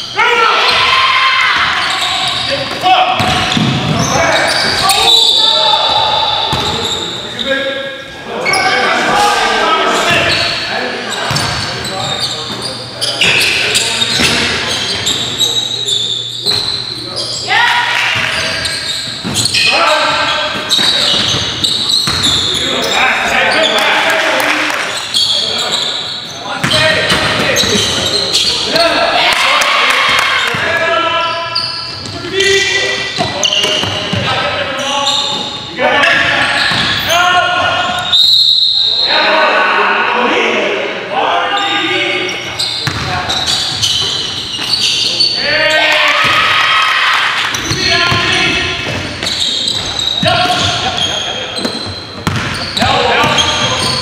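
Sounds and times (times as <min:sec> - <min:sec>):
basketball bouncing on hardwood floor: 0:52.2 - 0:52.6.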